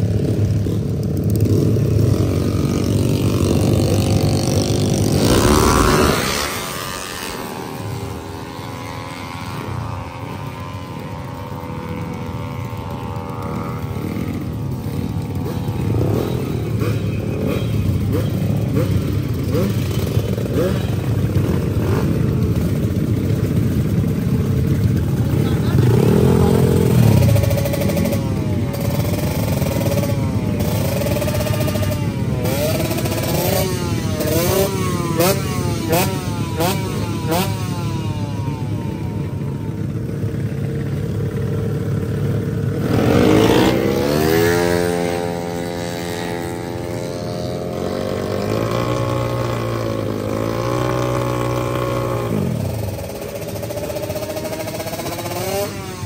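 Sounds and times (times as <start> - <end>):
scooter engine revving: 1.4 - 56.0.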